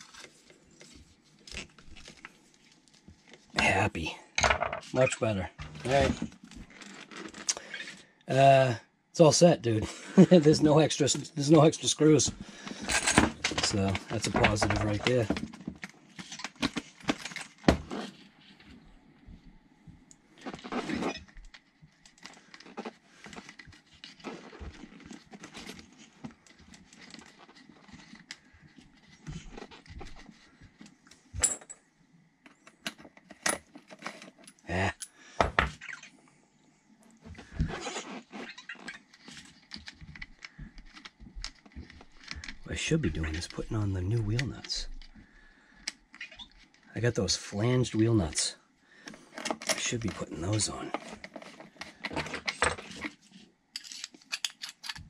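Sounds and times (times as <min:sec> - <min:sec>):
clicks and rattles of small parts: 0:12.6 - 0:18.1, 0:20.4 - 0:31.8, 0:32.5 - 0:35.1, 0:37.4 - 0:42.7, 0:49.3 - 0:55.0.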